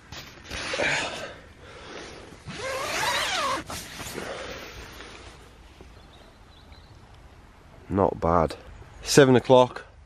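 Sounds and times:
tent zip pulled: 0.4 - 0.9, 2.4 - 5.0
nylon fabric rustling: 2.4 - 4.7.

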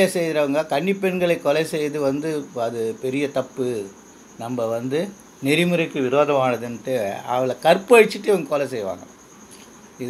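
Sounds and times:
high-pitched insect trill: 0.0 - 10.0.

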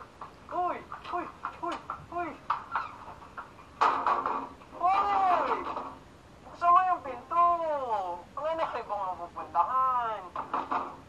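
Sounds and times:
young man shouting: 4.8 - 5.7.

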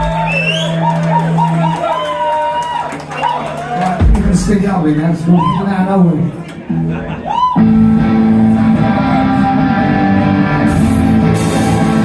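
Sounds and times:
live rock band playing: 6.6 - 12.0
guitars strumming: 7.6 - 12.0.

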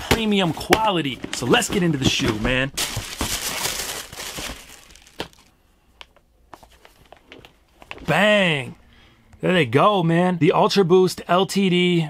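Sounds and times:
paper crinkling and rustling: 1.1 - 5.5.

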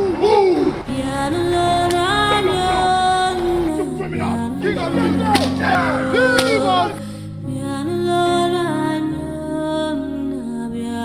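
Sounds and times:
voices: 0.0 - 7.3
background music: 0.0 - 11.0
whip crack: 5.3 - 6.7.

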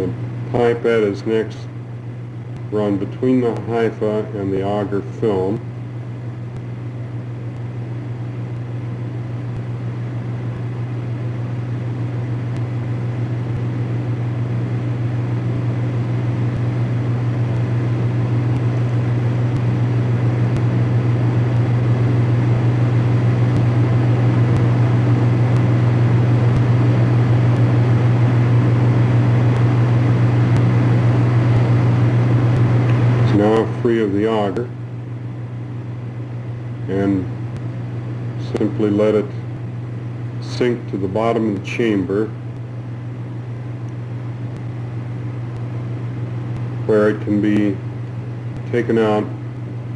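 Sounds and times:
steady low hum: 0.0 - 49.9.

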